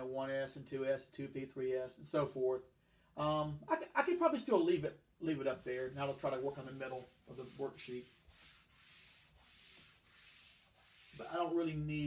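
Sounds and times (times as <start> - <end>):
eraser wiping chalkboard: 5.5 - 11.6.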